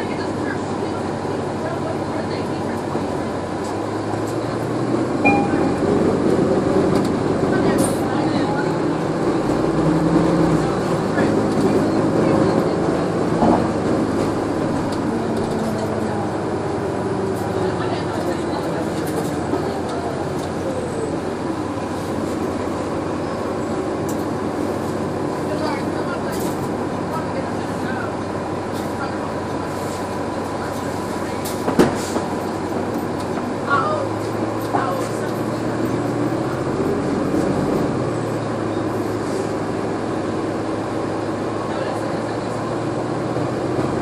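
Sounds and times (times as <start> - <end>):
diesel engine: 0.0 - 44.0
road noise: 0.0 - 44.0.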